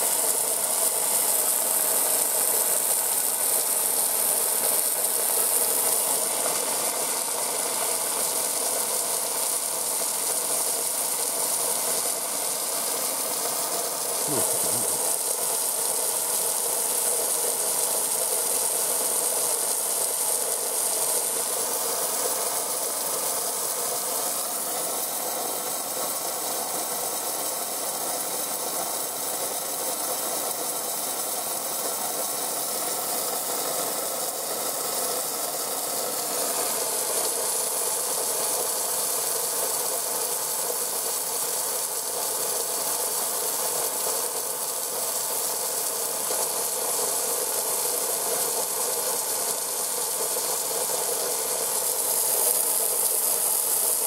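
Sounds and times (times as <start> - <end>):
garden hose spraying water: 0.0 - 54.0.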